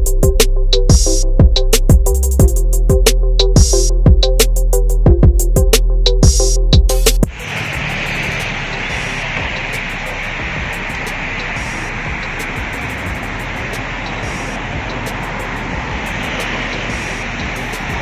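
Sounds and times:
background music: 0.0s - 18.0s
road traffic: 0.0s - 18.0s
wind rushing: 7.2s - 18.0s.

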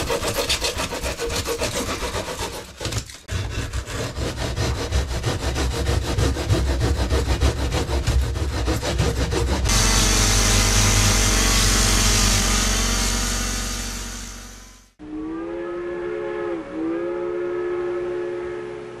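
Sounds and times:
saw rasping through foam: 0.0s - 14.4s
low rumble: 9.7s - 15.0s
steam locomotive whistle: 9.7s - 19.0s.

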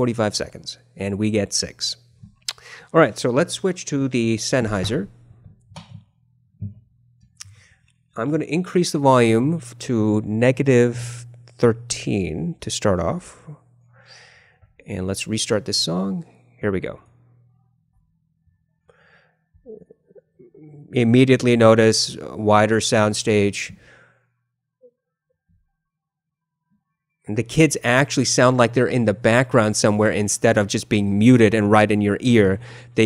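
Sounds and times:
faint breath: 2.5s - 3.0s, 7.5s - 8.0s, 13.3s - 14.8s, 18.9s - 19.6s, 23.8s - 24.3s, 32.6s - 33.0s
faint low vocal sounds: 19.6s - 21.1s.

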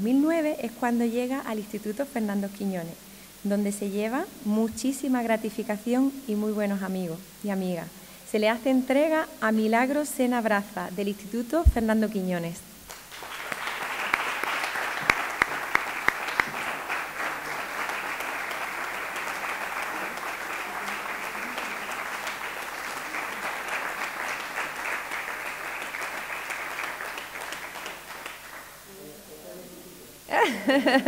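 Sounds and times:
audience applauding: 12.9s - 28.9s.

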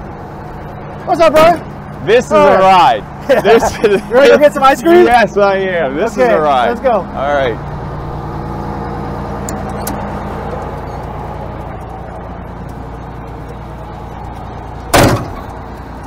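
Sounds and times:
diesel engine idling: 0.0s - 16.0s
cab door slamming: 14.9s - 15.5s.

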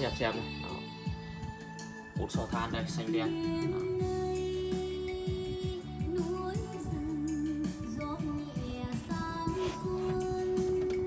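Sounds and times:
person singing: 3.3s - 11.0s.

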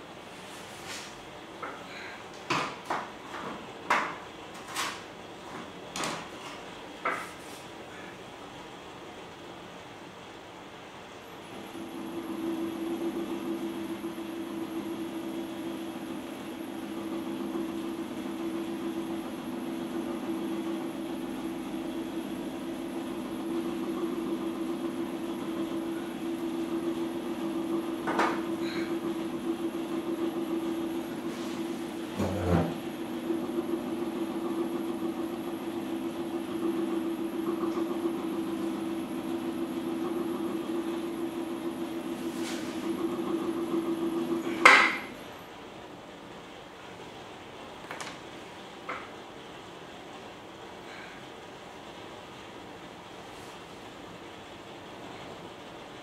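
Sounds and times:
potter's wheel motor humming: 11.4s - 45.7s.

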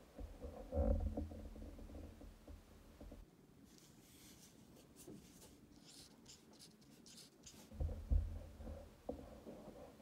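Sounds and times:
marker writing on whiteboard: 4.1s - 7.8s.

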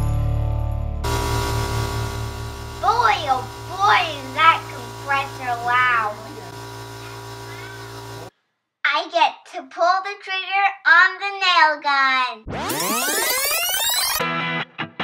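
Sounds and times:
high-pitched voice talking: 2.8s - 6.6s.

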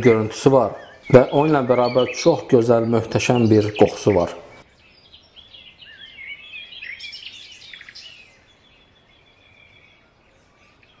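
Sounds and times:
songbird twittering: 0.0s - 11.0s.

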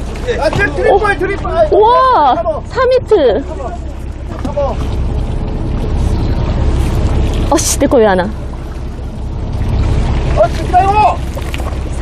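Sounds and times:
boat engine rumbling: 0.0s - 12.0s
sea noise: 0.0s - 12.0s
wind: 0.0s - 12.0s.

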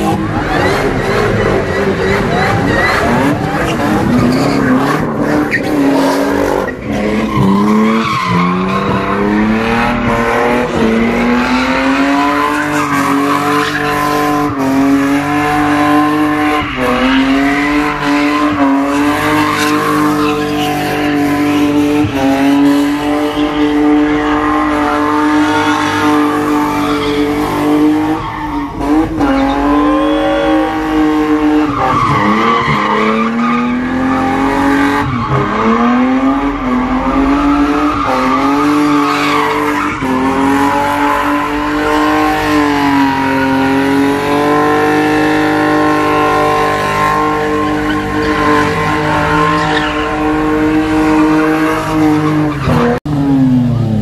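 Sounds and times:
tyres spinning on pavement: 0.0s - 30.5s
engine at high revs: 0.0s - 54.0s.

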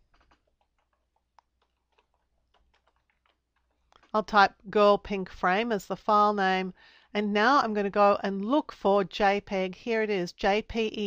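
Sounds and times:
soft keyboard typing: 0.0s - 4.6s.

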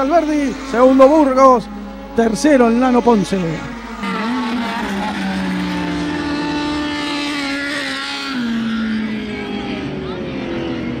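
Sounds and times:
race car engines running: 0.0s - 11.0s
race car passing close by: 0.0s - 11.0s.

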